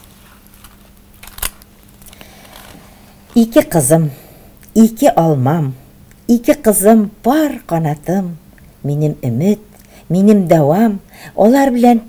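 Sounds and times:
book pages rustling: 0.0s - 2.9s
page snapping: 0.6s - 2.8s.

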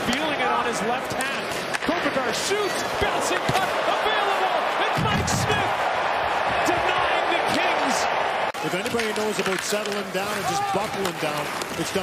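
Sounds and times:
arena crowd voices: 0.0s - 12.0s
hockey sticks knocking puck on ice: 1.1s - 3.8s, 8.8s - 12.0s.

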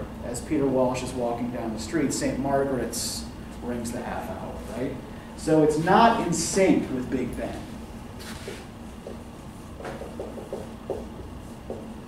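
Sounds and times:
marker tap: 9.8s - 11.1s.

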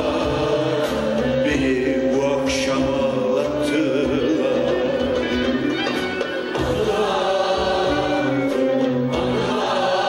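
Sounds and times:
choir singing slow melody: 0.0s - 5.3s, 6.5s - 10.0s
instrumental accompaniment: 0.0s - 10.0s.

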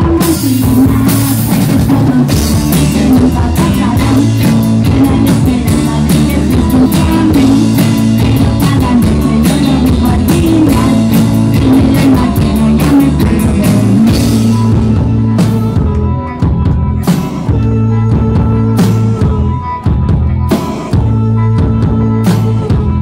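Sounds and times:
women singing: 0.0s - 15.3s
pop-rock band playing: 0.0s - 23.0s.

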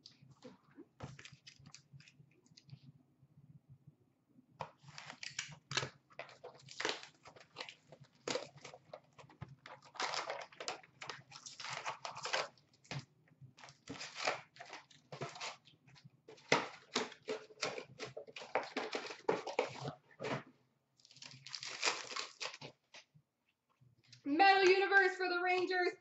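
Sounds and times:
card packs tearing open: 4.8s - 9.0s, 9.6s - 12.6s, 13.6s - 15.6s, 16.4s - 19.9s, 21.0s - 22.7s.

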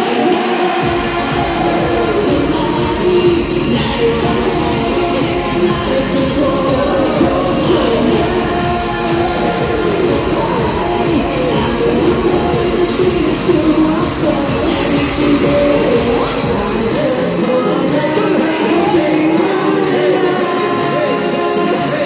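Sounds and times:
person singing over beat: 0.0s - 22.0s
pop music through sound system: 0.0s - 22.0s.

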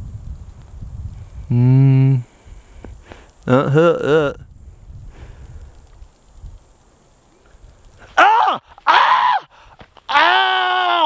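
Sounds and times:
man groaning: 1.5s - 2.3s, 3.5s - 4.4s, 8.2s - 9.4s.

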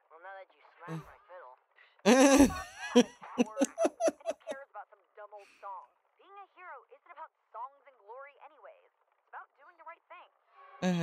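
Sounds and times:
girl speaking: 3.4s - 4.6s.

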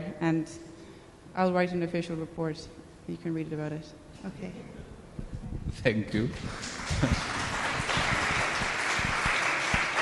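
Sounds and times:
audience applauding: 6.4s - 10.0s.

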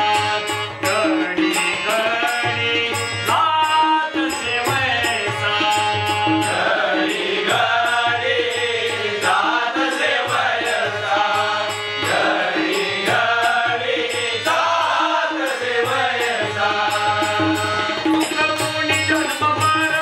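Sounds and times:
group of men singing: 0.0s - 20.0s
harmonium: 0.0s - 20.0s
tabla: 0.0s - 20.0s.

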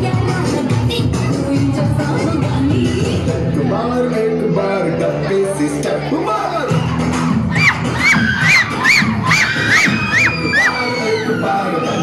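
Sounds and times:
loud dance music: 0.0s - 12.0s
children cheering and shouting: 6.1s - 12.0s
short high rising-and-falling cries: 7.6s - 12.0s.

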